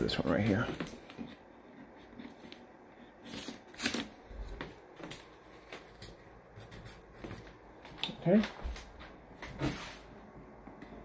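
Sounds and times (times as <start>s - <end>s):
object handling rustles and scrapes: 0.0s - 7.6s, 9.4s - 10.3s.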